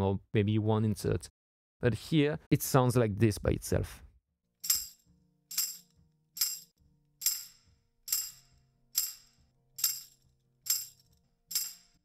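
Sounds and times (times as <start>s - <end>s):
tambourine jingle hits: 4.6s - 12.0s.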